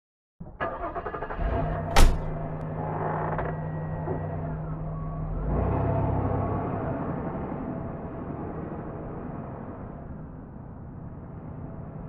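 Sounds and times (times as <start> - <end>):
car engine running: 1.4 - 5.7
loud bang: 1.9 - 2.6.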